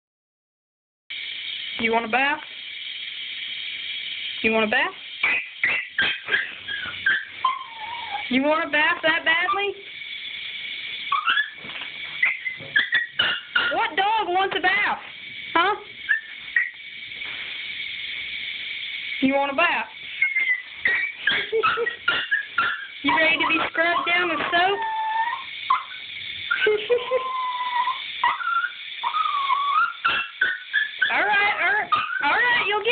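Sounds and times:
small dog yapping: 0:05.6 - 0:08.3, 0:11.1 - 0:11.6, 0:12.2 - 0:13.8, 0:16.1 - 0:16.7, 0:20.2 - 0:32.8.

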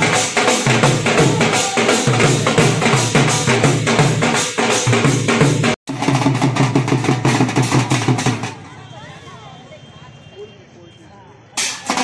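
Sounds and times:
dhol drums beating fast: 0:00.0 - 0:09.0, 0:11.8 - 0:12.0
crowd voices: 0:01.1 - 0:03.6, 0:08.3 - 0:12.0.

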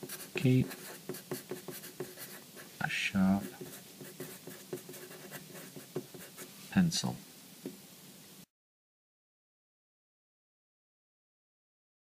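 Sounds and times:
pencil scratching on paper: 0:00.0 - 0:06.5.

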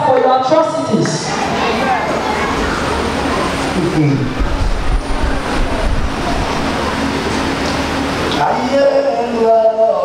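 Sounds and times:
congregation praying aloud: 0:00.0 - 0:10.0
deep rumble: 0:02.5 - 0:08.3.

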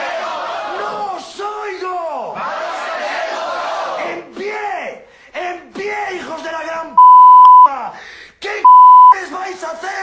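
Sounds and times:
high-pitched censor bleeps: 0:07.0 - 0:07.7, 0:08.7 - 0:09.2.

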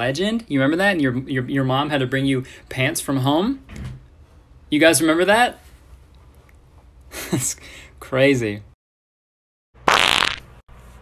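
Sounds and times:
short fart-like noise: 0:09.8 - 0:10.6.

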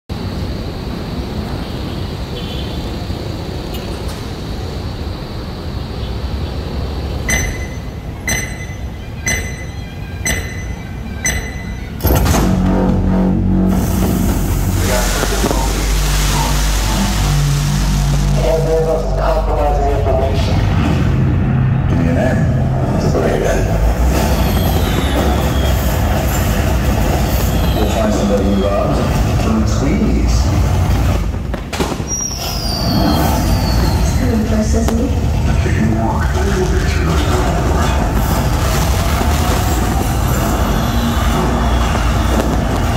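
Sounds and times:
city traffic rumble: 0:00.0 - 0:42.9
low sustained score notes: 0:07.3 - 0:24.1
firework bang: 0:12.0 - 0:18.5, 0:24.0 - 0:29.4, 0:30.4 - 0:35.4, 0:37.3 - 0:42.9
rising whoosh: 0:12.0 - 0:19.4
high squeal sliding down: 0:24.0 - 0:29.5, 0:32.0 - 0:34.6, 0:37.9 - 0:42.9.

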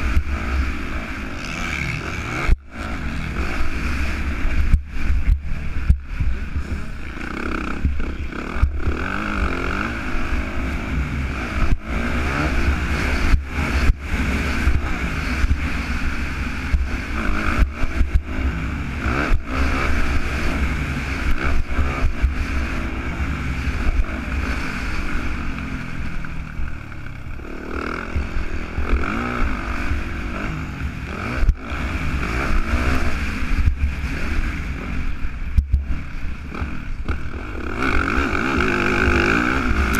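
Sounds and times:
motorcycle engine revving: 0:00.0 - 0:39.9.

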